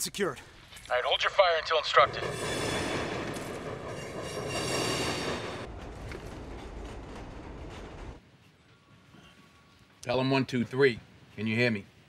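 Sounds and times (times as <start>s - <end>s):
subway train rushing past: 1.9s - 8.2s
wheels screeching on rails: 1.9s - 8.2s.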